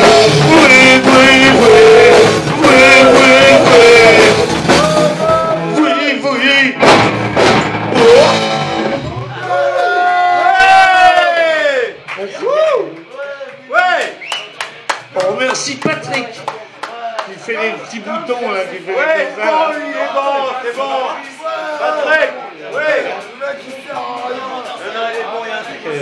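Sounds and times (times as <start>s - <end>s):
sharp drum and cymbal hits: 0.0s - 5.8s, 6.4s - 9.4s
electric guitar: 0.0s - 6.0s, 6.7s - 13.1s
person singing: 0.0s - 6.8s, 7.9s - 8.8s
drums: 0.0s - 26.0s.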